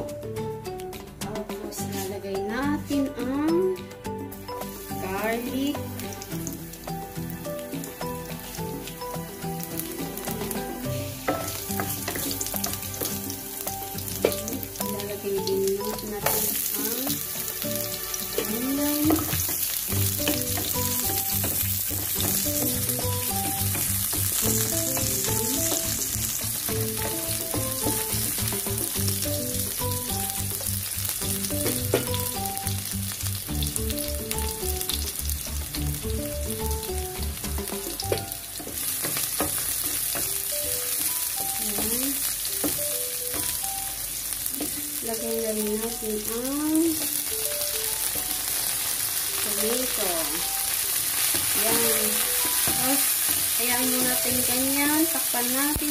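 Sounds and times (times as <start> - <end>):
onion sizzling in frying pan: 1.7 - 55.9.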